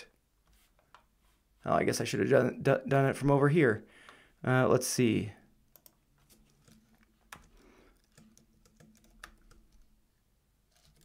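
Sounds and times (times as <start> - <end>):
keystrokes on computer keyboard: 5.7 - 9.9.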